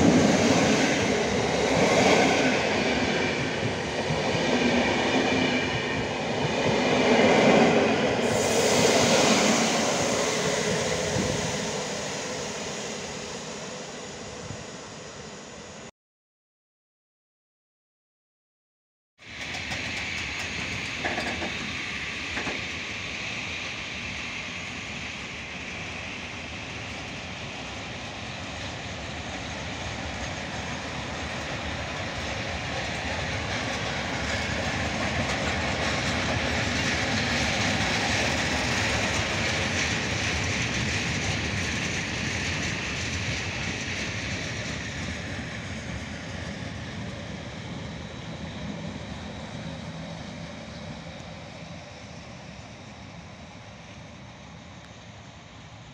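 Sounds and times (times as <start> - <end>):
freight train rolling past: 0.0 - 15.9, 19.2 - 55.9.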